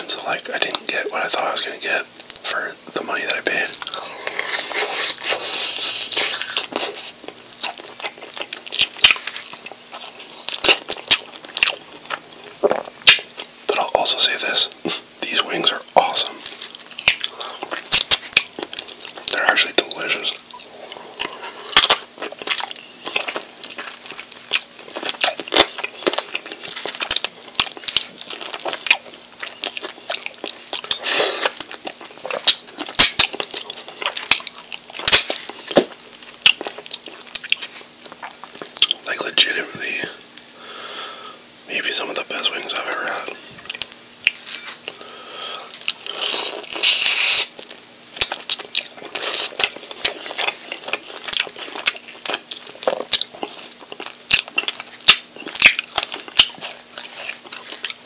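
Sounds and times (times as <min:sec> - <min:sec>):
chewing chicken wings: 0:03.2 - 0:39.6, 0:42.7 - 0:58.0.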